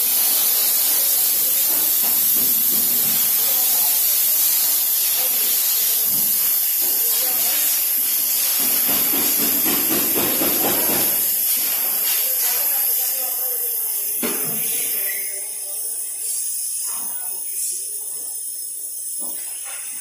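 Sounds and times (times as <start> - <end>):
high-pitched hiss: 0.0 - 20.0.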